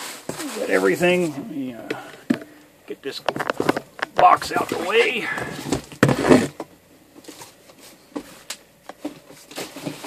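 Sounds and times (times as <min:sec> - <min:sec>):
cardboard box scraping: 0:04.6 - 0:06.6.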